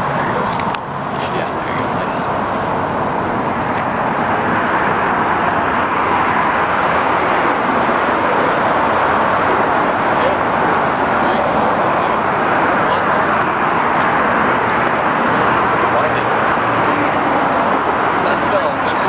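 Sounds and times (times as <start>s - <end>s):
steady outdoor roar: 0.0s - 19.0s.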